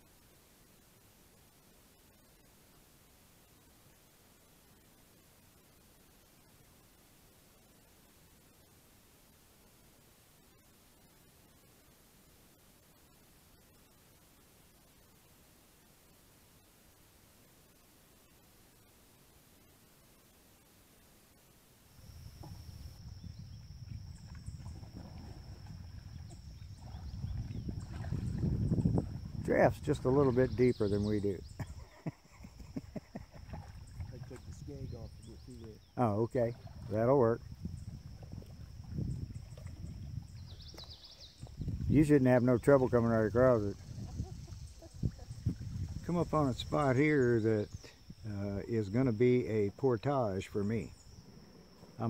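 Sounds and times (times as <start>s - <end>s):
insects droning: 0.0s - 52.0s
wind rumble on microphone: 22.0s - 46.9s
kayak paddling knocks: 22.2s - 30.7s.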